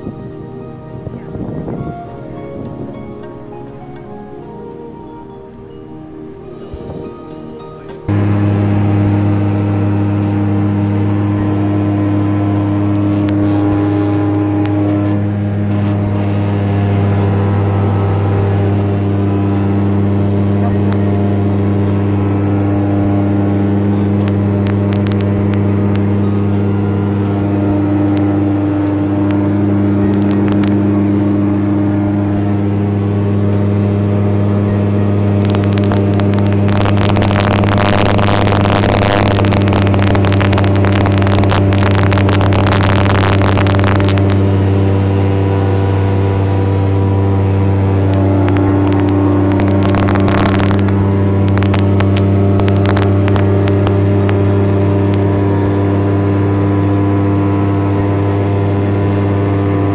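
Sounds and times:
aircraft engine and propeller droning: 0.0 - 59.9
rushing noise: 0.0 - 59.9.

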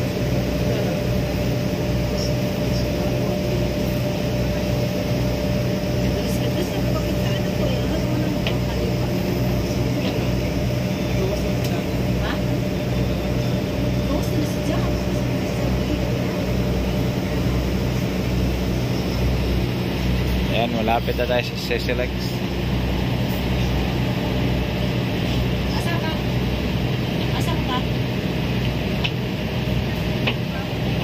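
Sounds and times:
constant engine hum: 0.0 - 31.0
ship diesel engines droning: 0.0 - 31.0.

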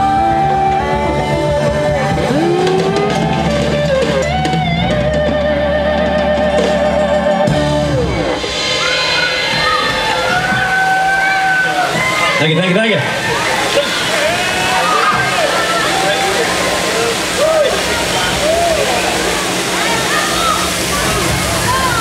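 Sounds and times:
bass guitar: 0.0 - 22.0
drum kit: 0.0 - 22.0
electric guitar: 0.0 - 22.0.

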